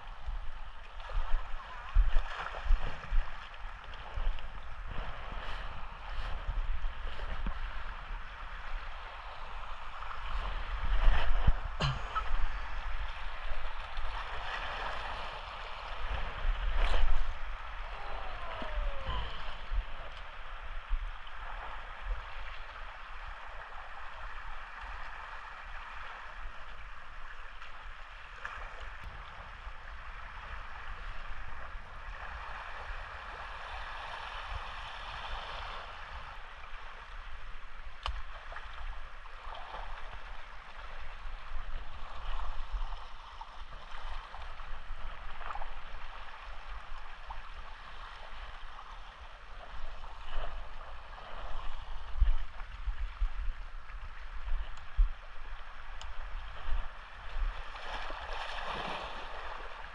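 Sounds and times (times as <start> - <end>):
wind buffeting microphone: 0.0 - 22.6
small waves washing against rocks: 55.7 - 59.9.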